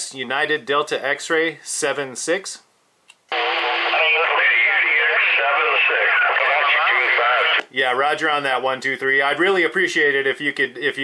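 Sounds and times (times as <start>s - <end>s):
radio click: 3.1s - 7.7s
voice over radio with static: 3.3s - 7.6s.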